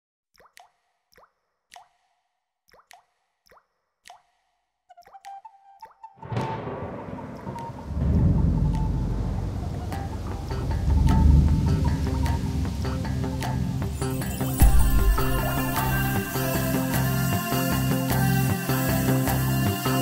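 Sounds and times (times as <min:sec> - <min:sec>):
water drops plopping: 0:00.3 - 0:06.1, 0:09.8 - 0:16.9
orchestral film music: 0:06.2 - 0:17.2.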